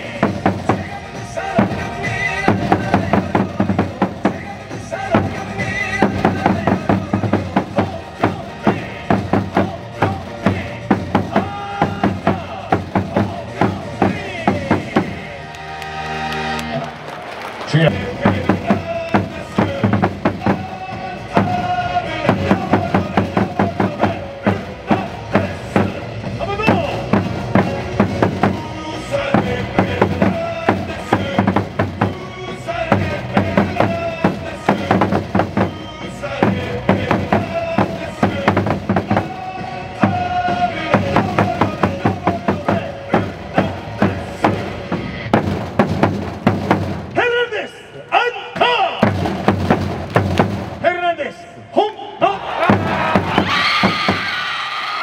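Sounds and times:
loud drum beats: 0.0 - 15.5, 17.7 - 47.4, 48.6 - 51.0, 52.5 - 54.5
cheer music with singing: 0.0 - 45.4, 52.2 - 55.0.

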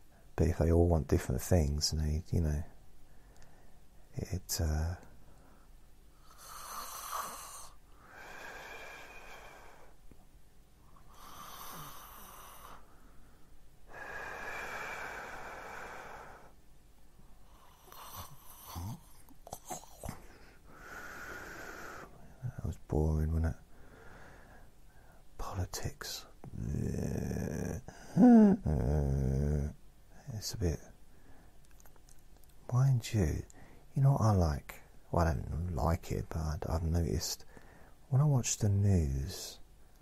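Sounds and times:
man breathing: 7.9 - 10.0, 11.1 - 16.6, 20.1 - 22.3, 23.7 - 25.3, 27.8 - 28.8, 33.5 - 33.9, 37.4 - 38.0
man making snoring sounds: 11.1 - 12.8, 17.6 - 20.2, 26.5 - 29.8
short vocal sound: 26.4 - 29.8.

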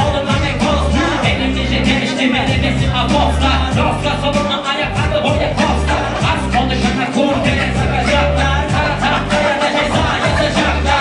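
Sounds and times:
heavy bass line: 0.0 - 11.0
live hip-hop music: 0.0 - 11.0
steady drum beat: 0.0 - 11.0.

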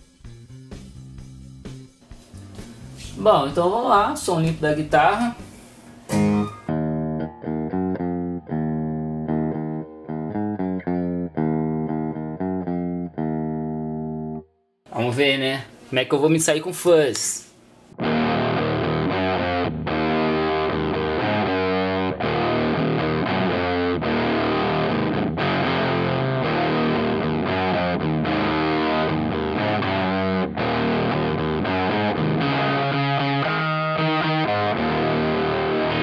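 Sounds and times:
fuzzed electric guitar chords: 5.4 - 14.5, 17.9 - 36.0.

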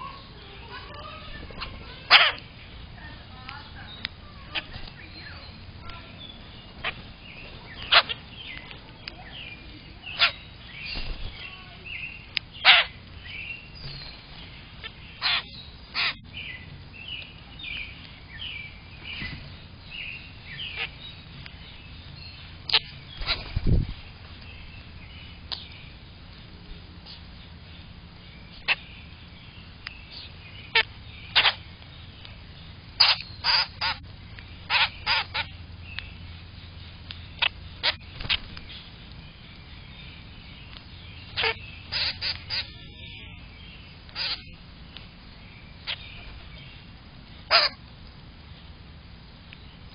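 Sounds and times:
sharp bird calls: 0.0 - 47.9
birds chirping downward: 0.0 - 49.9.

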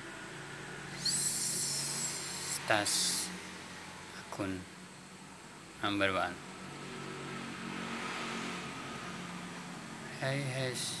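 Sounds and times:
even hiss: 0.9 - 3.4.

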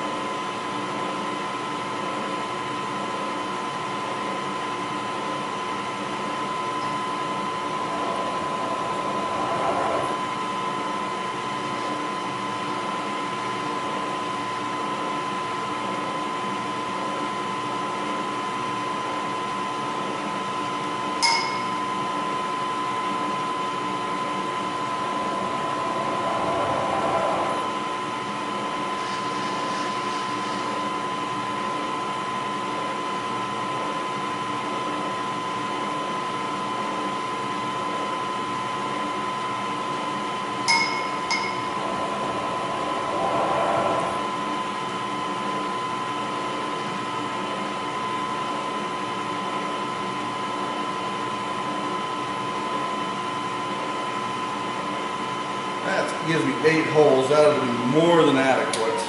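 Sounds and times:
milling machine whine: 0.0 - 59.0.

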